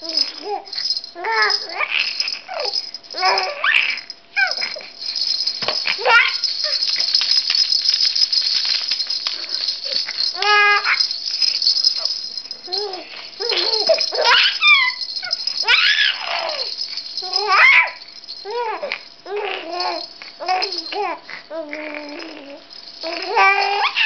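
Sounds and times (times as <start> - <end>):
toy rattle shaking: 0.0 - 24.0
baby cooing and babbling: 17.3 - 24.0.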